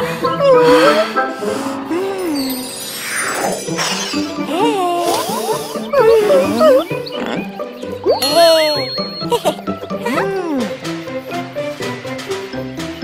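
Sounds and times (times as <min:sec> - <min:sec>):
light background music: 0:00.0 - 0:13.0
cartoon sliding pitch effects: 0:02.4 - 0:10.3.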